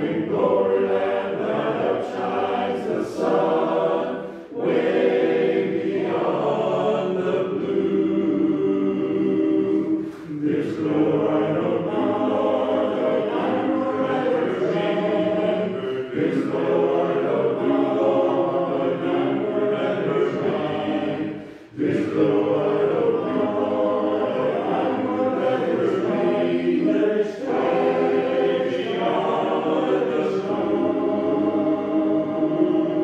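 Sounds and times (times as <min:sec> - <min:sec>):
men's chorus singing unaccompanied: 0:00.0 - 0:33.0.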